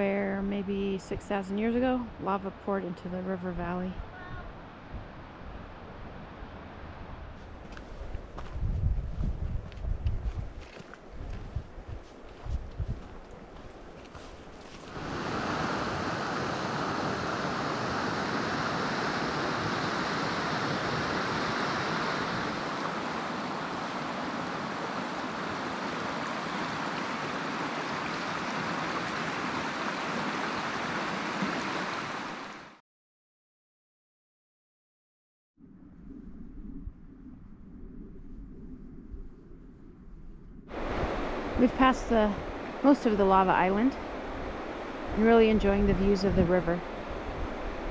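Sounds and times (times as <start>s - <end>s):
low thumps and rumbles: 7.2s - 13.4s
river rushing through rapids: 14.9s - 32.7s.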